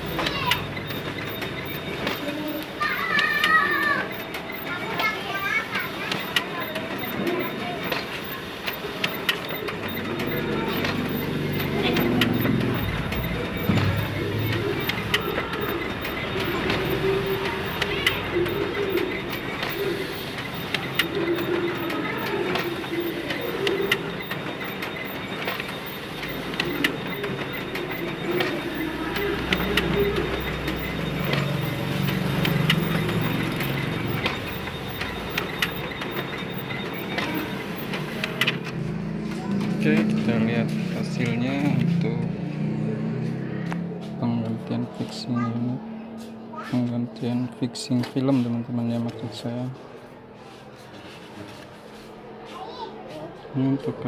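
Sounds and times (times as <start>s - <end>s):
photocopier running: 0.0s - 44.3s.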